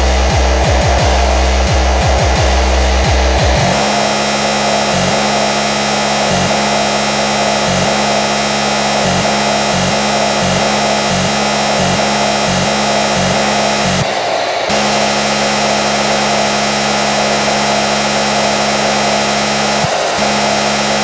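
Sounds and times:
fast distorted kick drums: 0:00.0 - 0:14.1, 0:14.7 - 0:21.0
continuous harsh electronic buzz: 0:00.0 - 0:21.0.

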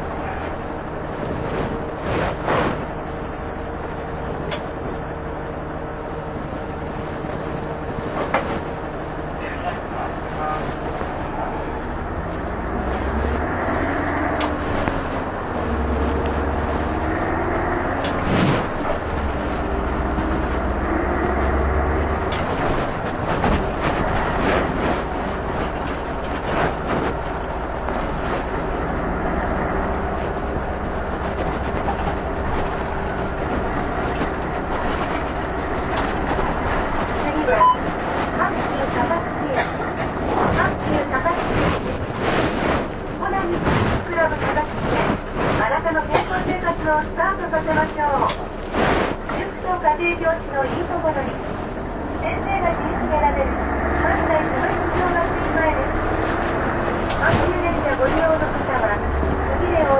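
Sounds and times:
bus body knocks and rattles: 0:00.0 - 0:10.0, 0:14.3 - 0:49.6
bus engine revving through gears: 0:00.0 - 0:59.9
low road rumble: 0:00.0 - 0:59.9.

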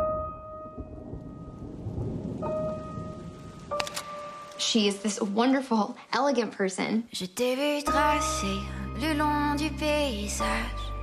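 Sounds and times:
low rumble of thunder: 0:00.0 - 0:04.8
rain: 0:00.6 - 0:06.2
sharp click: 0:03.8 - 0:04.1.

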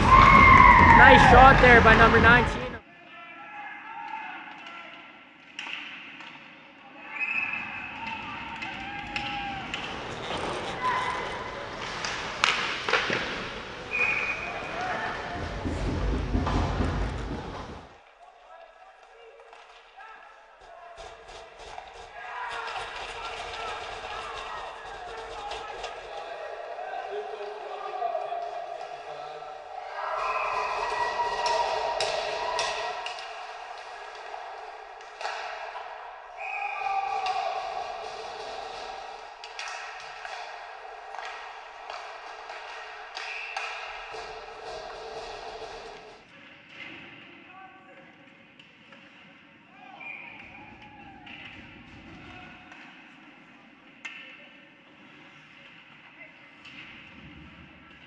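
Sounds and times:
people shouting: 0:00.0 - 0:02.7, 0:20.7 - 0:45.2
hockey sticks and puck clacking: 0:04.5 - 0:06.6, 0:07.5 - 0:17.8, 0:19.0 - 0:26.4, 0:30.2 - 0:47.3, 0:50.4 - 0:57.3.

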